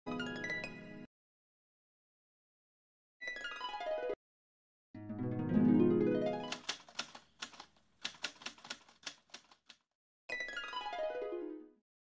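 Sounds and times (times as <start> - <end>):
typewriter keystroke clicks: 6.5 - 9.8.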